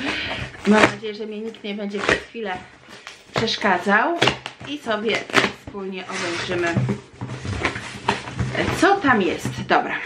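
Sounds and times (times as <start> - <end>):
woman speaking: 0.6 - 2.7, 3.3 - 6.9, 8.5 - 10.0
cardboard box being opened: 5.2 - 9.2.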